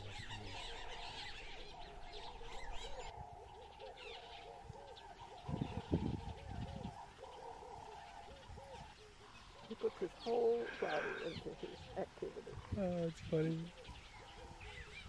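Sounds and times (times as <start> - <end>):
birds chirping and calling: 0.0 - 15.0
repeated low bird calls: 0.0 - 15.0.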